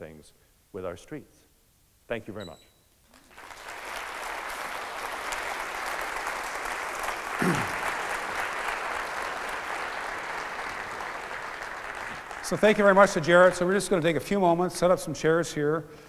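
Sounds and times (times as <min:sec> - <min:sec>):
audience applauding: 0:03.1 - 0:13.8.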